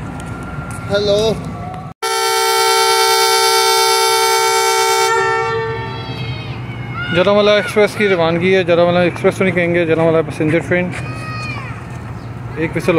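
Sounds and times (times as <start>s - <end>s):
locomotive air horn blast: 2.0s - 6.2s.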